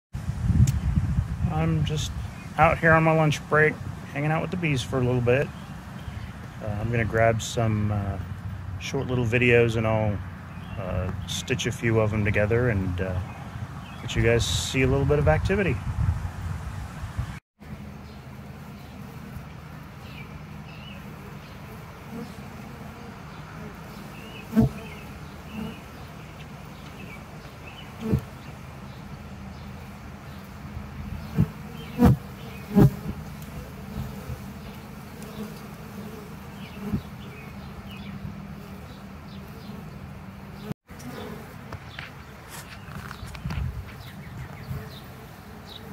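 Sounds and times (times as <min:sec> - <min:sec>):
wind noise on microphone: 0:00.2 - 0:03.0, 0:13.2 - 0:17.4, 0:36.8 - 0:37.1, 0:42.8 - 0:45.0
honeybees humming: 0:00.2 - 0:15.8, 0:17.2 - 0:45.9
single bees buzzing past: 0:17.1 - 0:45.9.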